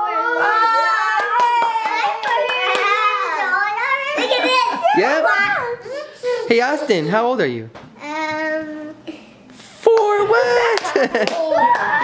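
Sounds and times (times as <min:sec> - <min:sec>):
person clapping: 0:10.7 - 0:12.0.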